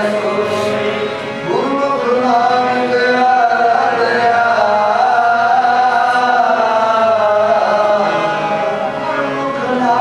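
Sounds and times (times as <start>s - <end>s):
harmonium accompaniment: 0.0s - 10.0s
men singing a hymn: 0.0s - 10.0s.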